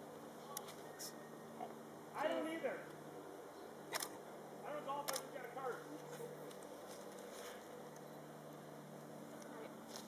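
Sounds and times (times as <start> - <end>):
faint background hum: 0.0 - 10.0
camera shutter click: 3.9 - 4.2, 5.0 - 5.3.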